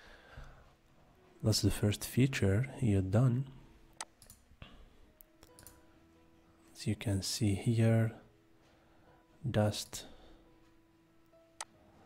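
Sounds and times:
faint computer mouse clicks: 4.0 - 4.4, 5.4 - 5.8.

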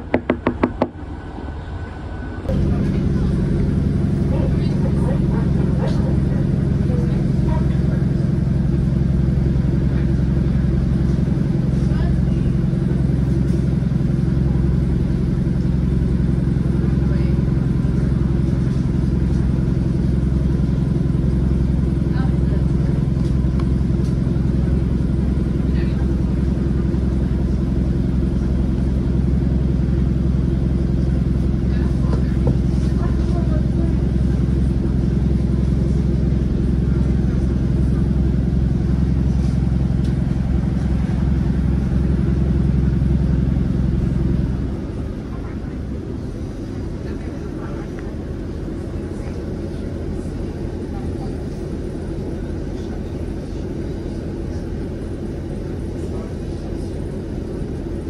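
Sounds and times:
train engine drone: 0.0 - 58.0.

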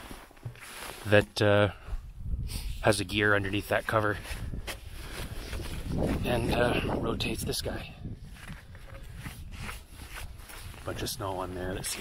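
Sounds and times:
clothing rustling against snow: 0.0 - 1.5, 3.6 - 6.8, 8.2 - 12.0.

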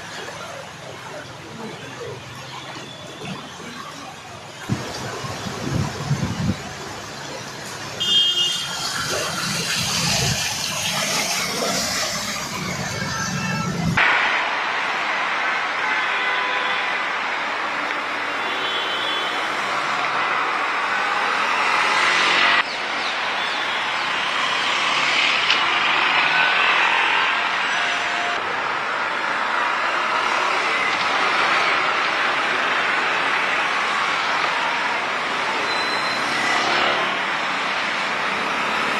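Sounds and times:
street traffic hiss: 0.0 - 38.9.

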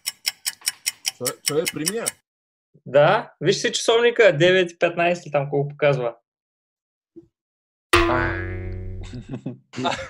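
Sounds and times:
twangy ringing note: 8.0 - 9.2.

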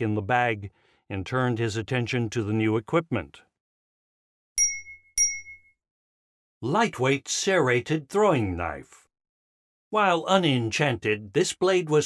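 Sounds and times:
bright chime dings: 4.6 - 5.8.

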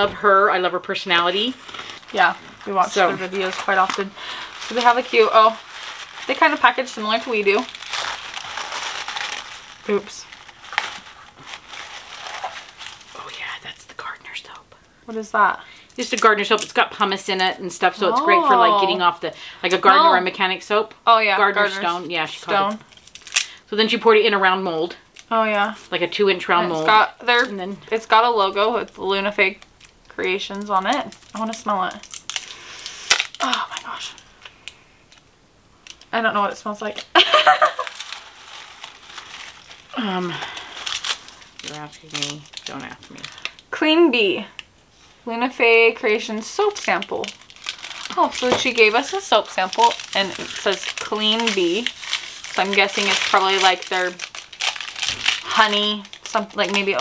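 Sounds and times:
tissue paper rustling and crinkling: 0.0 - 14.6, 21.4 - 23.5, 25.2 - 34.6, 35.8 - 43.6, 46.0 - 57.0
burst of laughter: 37.2 - 37.9.

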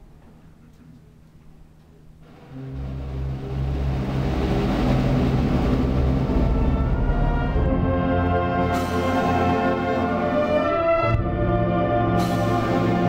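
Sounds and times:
wind band playing brass chords: 2.3 - 13.0.

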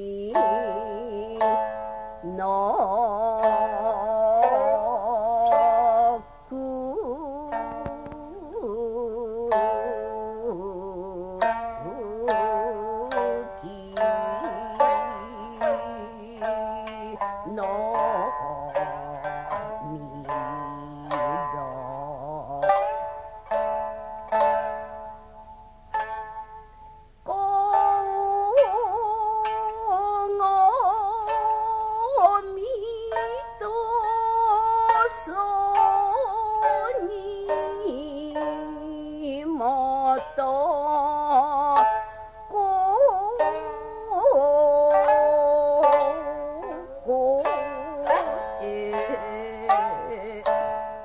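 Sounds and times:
woman singing long wavering notes: 0.0 - 25.3, 27.2 - 51.0
plucked shamisen notes: 0.0 - 51.0.

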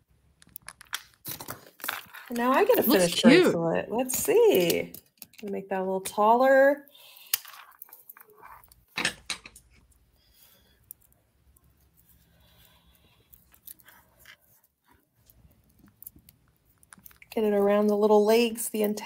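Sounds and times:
beaded bracelet clicking and rustling: 0.3 - 2.9, 4.1 - 5.6, 7.0 - 19.0.

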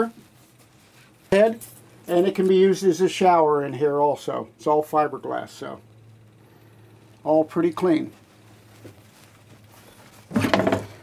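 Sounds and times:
faint handling noise: 0.0 - 2.9, 6.9 - 11.0.

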